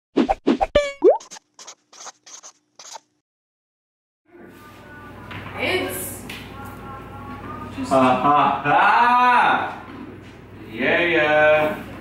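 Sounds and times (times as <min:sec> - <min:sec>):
pen scribbling: 0:01.3 - 0:03.1.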